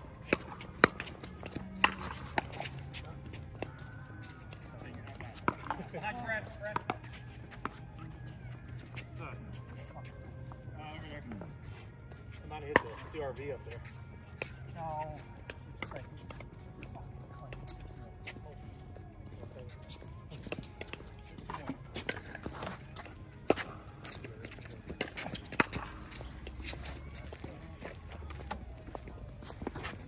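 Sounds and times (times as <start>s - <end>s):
balls hitting paddles and court: 0.0s - 30.0s.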